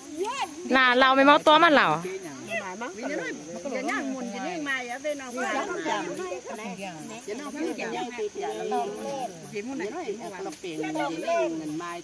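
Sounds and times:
high-pitched insect drone: 0.0 - 12.0
women talking: 0.2 - 12.0.

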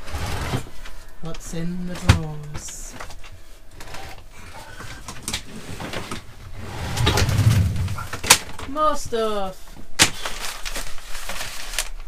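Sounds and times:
drawer sliding rumble: 0.0 - 0.7, 3.8 - 8.3.

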